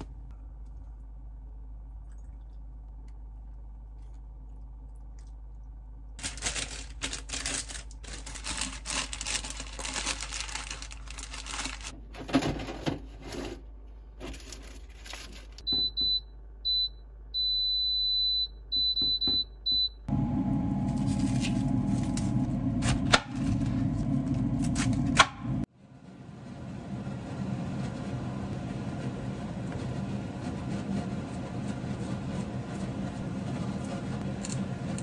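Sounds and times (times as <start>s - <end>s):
appliance control panel beeps: 15.6s - 20.8s.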